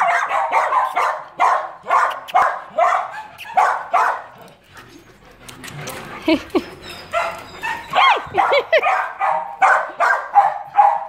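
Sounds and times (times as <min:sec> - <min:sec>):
high dog yips: 0:00.0 - 0:04.2, 0:06.8 - 0:11.0
dogs barking: 0:00.0 - 0:04.6, 0:06.9 - 0:11.0.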